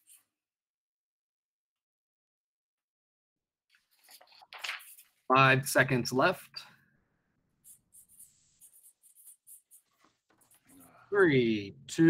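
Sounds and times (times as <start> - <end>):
pen scratching on paper: 7.6 - 11.0.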